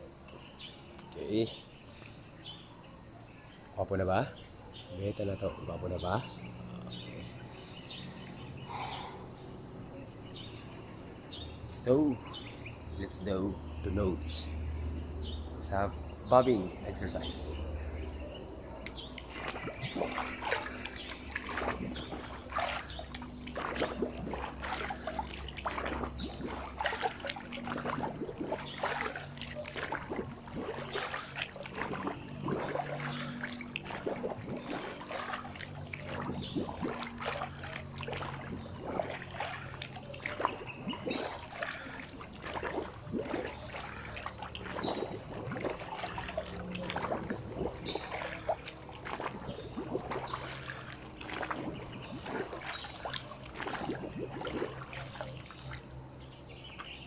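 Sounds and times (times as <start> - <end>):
pool water splashing: 0.0 - 57.0.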